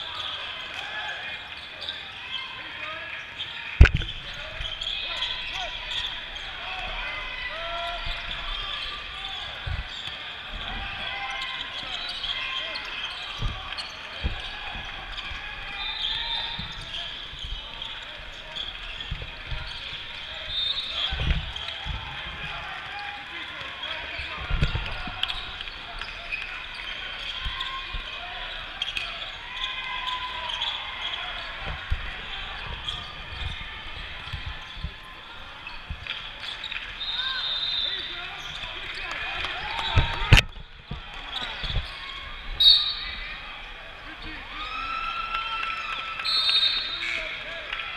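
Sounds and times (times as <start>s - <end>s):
chatter of players and spectators: 0.0s - 47.9s.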